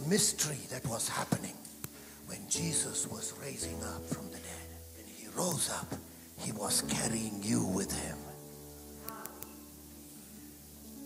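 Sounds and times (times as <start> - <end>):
soft background music: 0.0 - 11.0
man whispering into microphone: 0.1 - 8.4.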